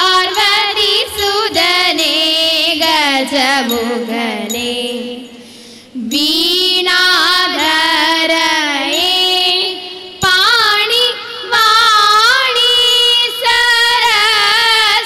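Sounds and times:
woman singing: 0:00.0 - 0:15.0.

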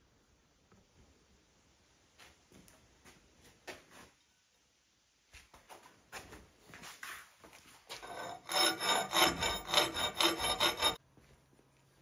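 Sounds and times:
hand tool scraping steel: 0:07.9 - 0:11.0.

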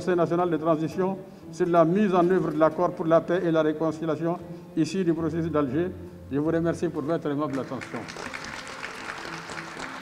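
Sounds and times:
audience applause: 0:07.5 - 0:10.0.

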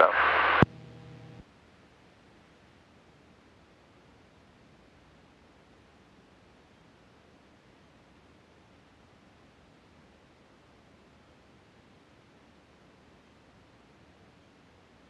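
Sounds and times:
radio click: 0:00.0 - 0:01.4
radio hiss: 0:00.0 - 0:01.4
faint steady hum: 0:00.0 - 0:15.0.

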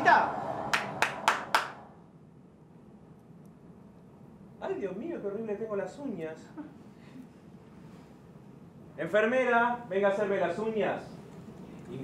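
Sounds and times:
person clapping slowly: 0:00.8 - 0:01.8.

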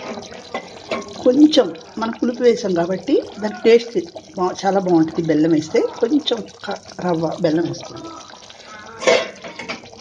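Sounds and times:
gravy bubbling in a pot: 0:00.0 - 0:10.0.

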